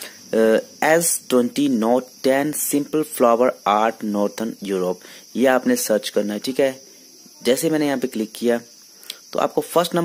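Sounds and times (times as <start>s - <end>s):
high-pitched background noise: 0.0s - 10.0s
man speaking: 0.0s - 10.0s.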